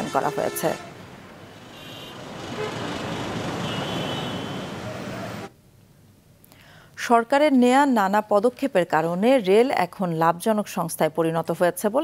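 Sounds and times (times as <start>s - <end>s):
vehicle horn: 0.0s - 1.1s, 1.7s - 4.8s
slow road traffic: 0.0s - 5.7s.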